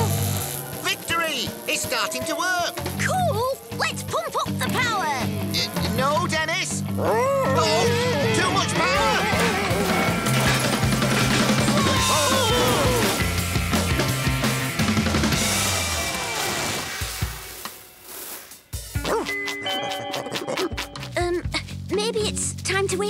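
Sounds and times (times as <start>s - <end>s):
cartoon background music with bass: 0.0s - 16.8s, 18.8s - 23.0s.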